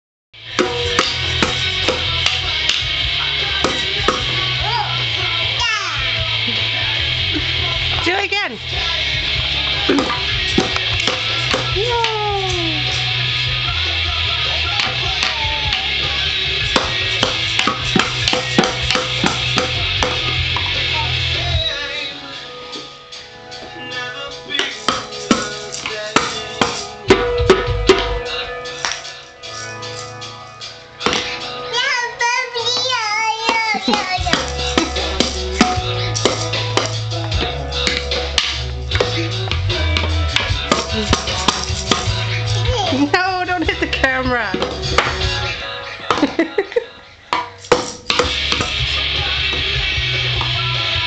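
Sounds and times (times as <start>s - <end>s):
background music: 0.4s - 51.0s
toy bongos struck with mallet: 0.5s - 4.4s, 9.8s - 12.2s, 16.6s - 20.7s, 24.6s - 29.0s, 33.5s - 42.3s, 47.3s - 49.6s
child shouting: 4.6s - 5.0s, 5.6s - 6.1s, 11.8s - 12.8s, 31.7s - 34.5s, 42.5s - 43.0s
maraca: 8.8s - 21.0s, 24.6s - 30.7s, 33.5s - 43.8s.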